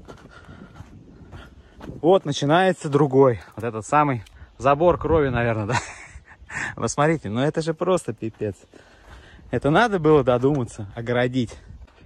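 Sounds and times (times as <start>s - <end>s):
person breathing: 0.0s - 1.9s, 8.6s - 9.5s
footsteps on dirt path: 0.0s - 5.4s, 7.0s - 12.0s.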